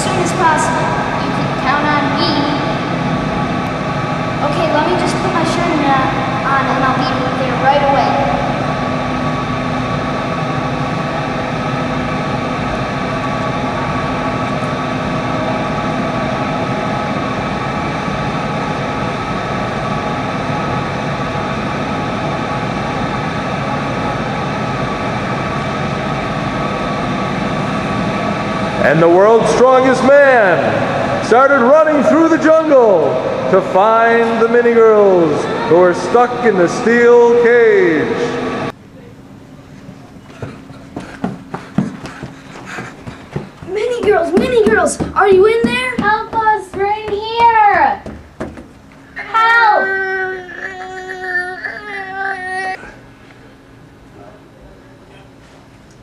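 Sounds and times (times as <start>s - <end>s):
steady mechanical hum: 0.0s - 56.0s.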